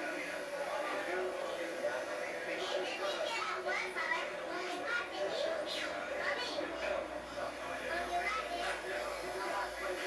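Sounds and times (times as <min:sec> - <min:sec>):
babble of overlapping voices: 0:00.0 - 0:10.0.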